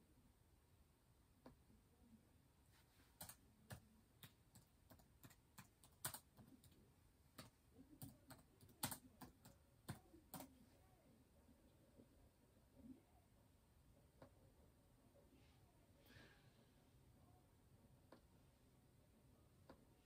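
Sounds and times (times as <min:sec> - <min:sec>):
faint keyboard typing: 0:02.7 - 0:10.8.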